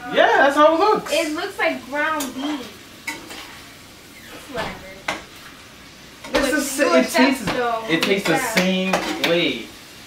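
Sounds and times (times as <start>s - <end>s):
meat sizzling in a frying pan: 0.0s - 10.0s
spatula scraping a pan: 2.2s - 5.5s.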